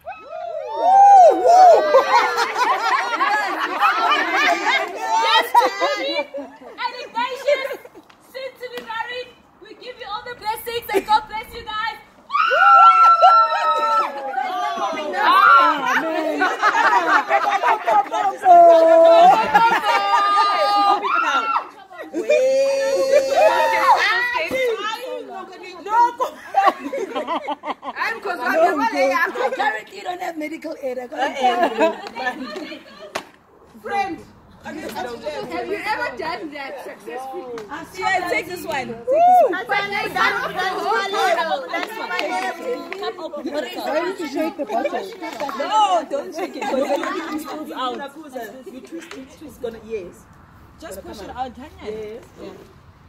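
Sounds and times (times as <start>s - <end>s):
overlapping chatter: 0.0s - 53.0s.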